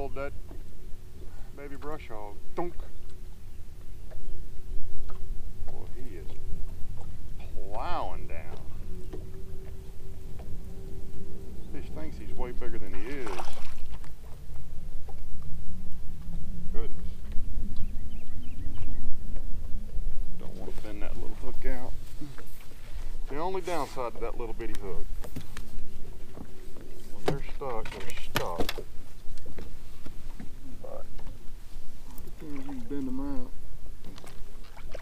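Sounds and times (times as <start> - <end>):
faint steady hum: 0.0 - 35.0
water lapping against boat hull: 0.0 - 35.0
wind buffeting microphone: 0.0 - 35.0.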